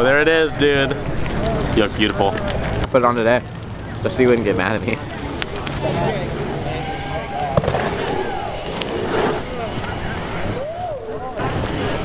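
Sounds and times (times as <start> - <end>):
outdoor background noise: 0.0 - 12.0
people calling out and talking: 0.0 - 12.0
sharp crack: 7.5 - 9.4.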